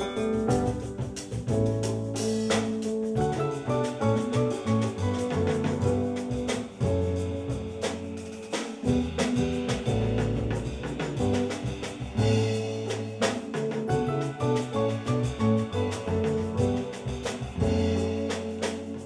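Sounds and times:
latin jazz band playing: 0:00.0 - 0:19.0
upright bass notes: 0:00.0 - 0:19.0.

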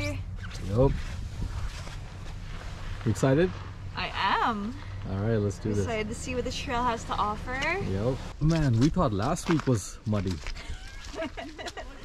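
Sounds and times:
wind on microphone: 0:00.0 - 0:02.0.

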